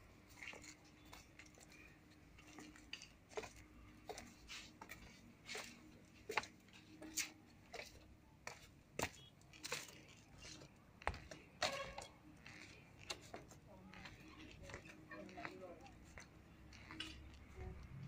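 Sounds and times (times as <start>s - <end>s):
faint footsteps: 0.1s - 18.0s.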